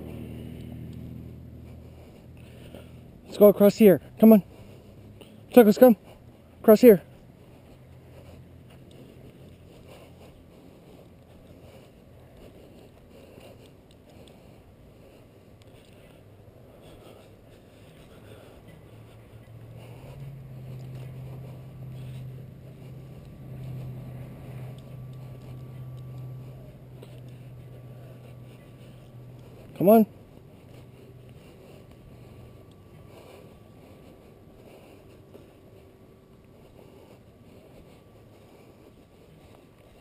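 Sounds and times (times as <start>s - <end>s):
low steady engine hum: 0.0s - 40.0s
quiet outdoor ambience: 0.0s - 40.0s.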